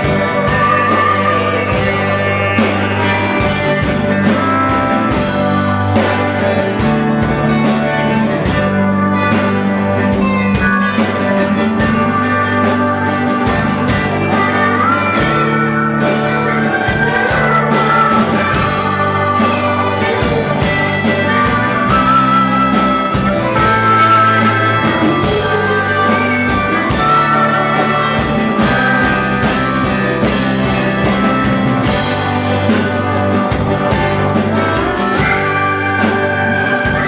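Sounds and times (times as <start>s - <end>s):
live blues-rock band: 0.0s - 37.0s
melodic lead line: 0.0s - 37.0s.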